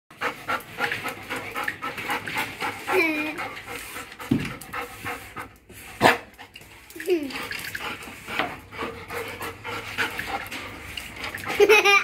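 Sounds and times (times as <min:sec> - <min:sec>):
dog panting: 0:00.1 - 0:06.6, 0:07.3 - 0:11.5.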